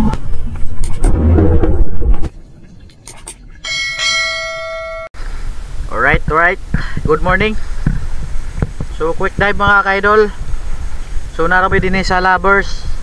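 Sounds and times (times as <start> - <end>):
bass-heavy music hits: 0.9 - 2.3
ringing bell chime: 3.6 - 5.1.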